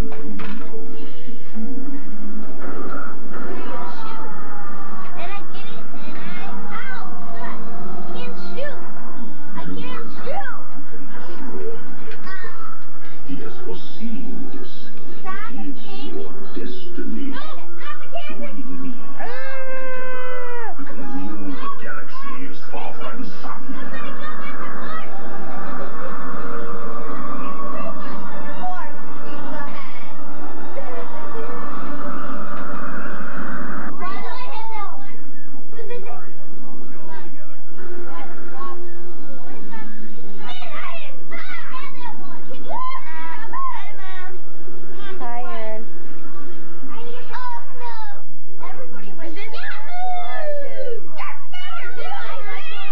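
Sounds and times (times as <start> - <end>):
children's voices: 3.4 - 10.8, 11.4 - 14.0, 14.6 - 32.4, 33.9 - 36.3, 38.0 - 45.8, 46.4 - 52.9
child crying out: 19.2 - 20.8.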